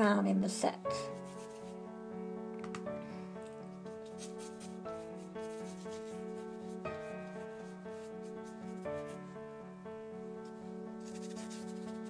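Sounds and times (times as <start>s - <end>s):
background music melody: 0.0s - 12.0s
paintbrush rubbing on paper: 0.9s - 1.8s, 3.9s - 9.3s, 10.4s - 12.0s.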